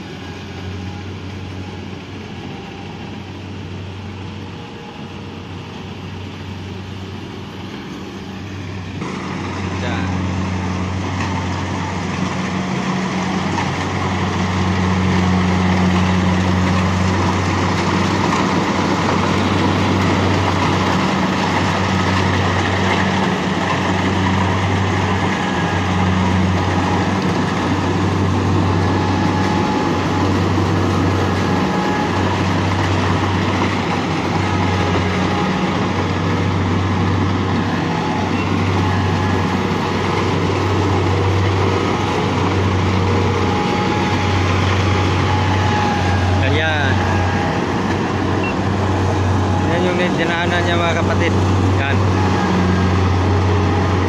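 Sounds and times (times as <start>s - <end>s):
combine harvester engine hum: 0.0s - 54.0s.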